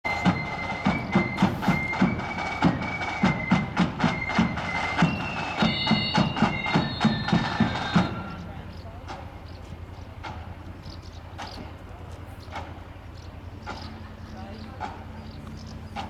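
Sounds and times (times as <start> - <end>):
flute melody: 0.1 - 8.6
drum beats: 0.1 - 11.8.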